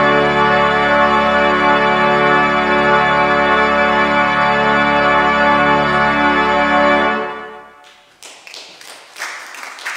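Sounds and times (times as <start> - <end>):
pipe organ chord: 0.0 - 7.8
scattered clapping: 7.8 - 9.9.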